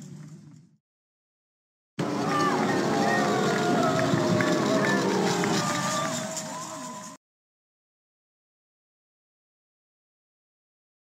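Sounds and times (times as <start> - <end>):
crowd shouting: 2.0 - 7.2.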